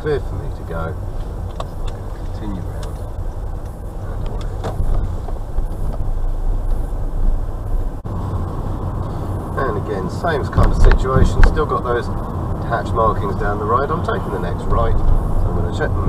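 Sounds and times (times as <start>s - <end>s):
engine and road rumble in car: 0.0s - 16.0s.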